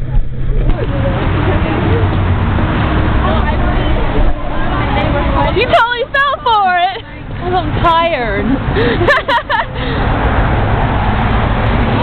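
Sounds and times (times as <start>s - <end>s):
faint chatter: 0.0s - 8.6s
road traffic rumble: 0.0s - 12.0s.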